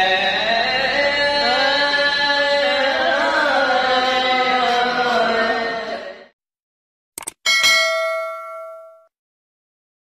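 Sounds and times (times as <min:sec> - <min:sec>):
person singing: 0:00.0 - 0:06.4
bright bell ding: 0:07.5 - 0:09.1.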